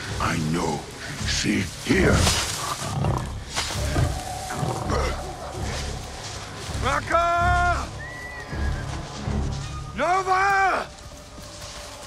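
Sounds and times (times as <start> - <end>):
pulsing low trailer music: 0.0 - 12.0.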